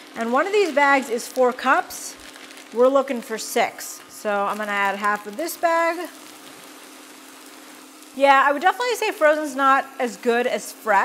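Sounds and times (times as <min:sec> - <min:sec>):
faint steady hum: 0:00.0 - 0:11.0
onions sizzling in a skillet: 0:00.0 - 0:11.0.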